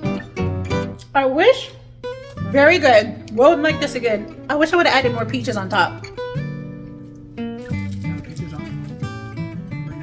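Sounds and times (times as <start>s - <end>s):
acoustic guitar music: 0.0s - 1.3s, 2.0s - 10.0s.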